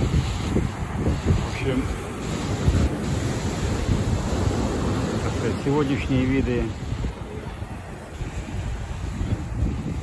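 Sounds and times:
sea surf breaking on rocks: 0:00.0 - 0:10.0
wind buffeting microphone: 0:00.0 - 0:10.0.

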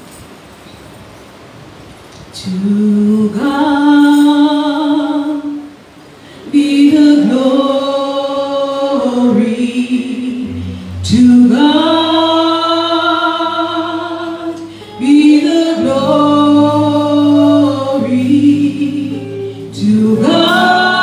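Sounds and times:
group singing slow gospel chorus: 0:06.4 - 0:21.0.

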